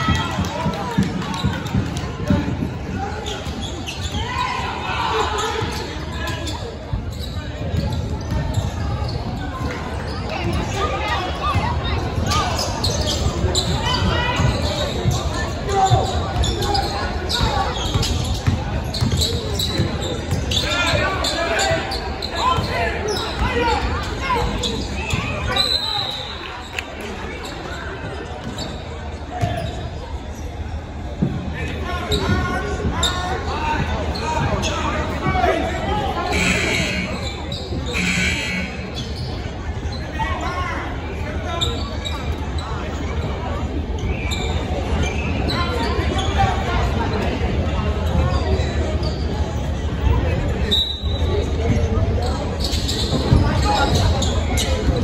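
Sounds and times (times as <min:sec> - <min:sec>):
indistinct shouts and chatter: 0:00.0 - 0:55.0.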